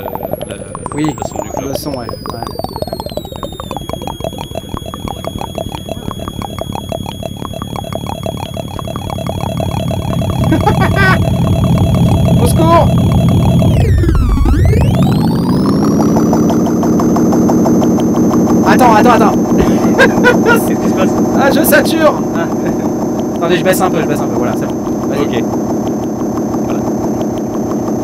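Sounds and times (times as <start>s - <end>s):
pinging synthesizer filter notes: 0.0s - 28.0s
thin high whine: 0.0s - 28.0s.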